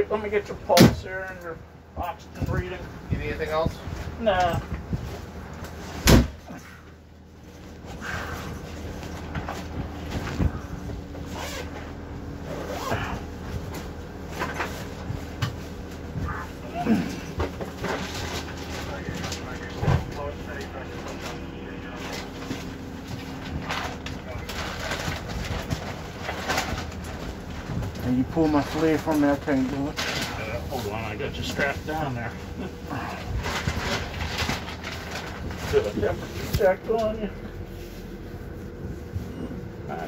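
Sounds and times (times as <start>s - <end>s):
steady low hum: 0.0s - 40.0s
faint voices: 16.2s - 25.6s.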